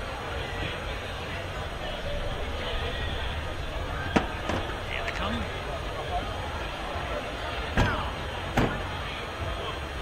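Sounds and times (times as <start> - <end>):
low street background: 0.0 - 10.0.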